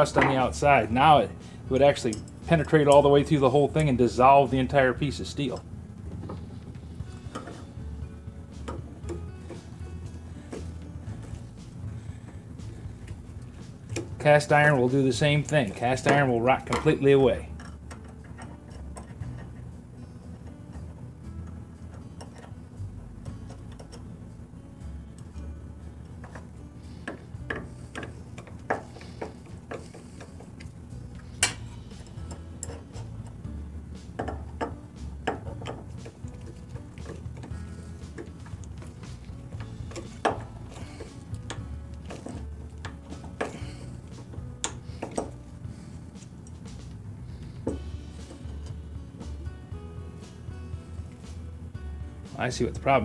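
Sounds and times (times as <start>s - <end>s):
soft background music: 0.0s - 53.0s.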